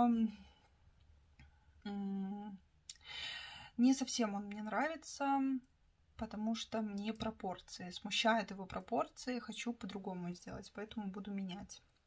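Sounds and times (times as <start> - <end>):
woman speaking: 0.0 - 0.6, 1.9 - 3.0, 3.7 - 11.9
woman breathing: 3.0 - 3.8.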